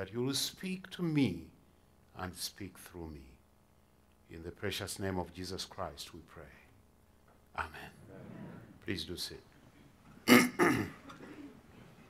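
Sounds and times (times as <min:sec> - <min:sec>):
man clearing his throat: 0:10.2 - 0:11.5.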